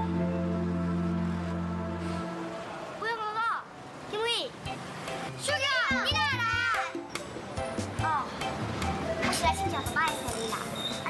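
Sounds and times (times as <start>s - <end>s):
background music of held notes: 0.0s - 2.8s, 4.6s - 11.0s
children speaking: 5.4s - 7.0s, 7.9s - 8.4s, 9.1s - 11.0s.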